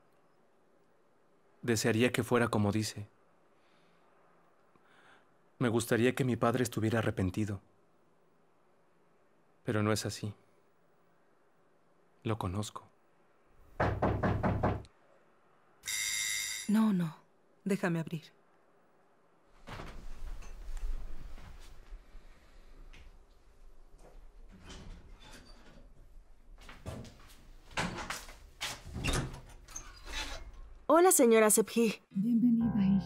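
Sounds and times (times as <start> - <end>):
knocking on a door: 13.7 - 14.9.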